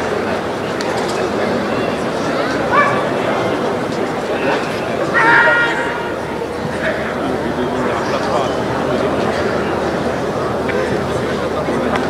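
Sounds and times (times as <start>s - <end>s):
people talking: 0.0s - 12.0s
dog barking: 2.7s - 3.1s.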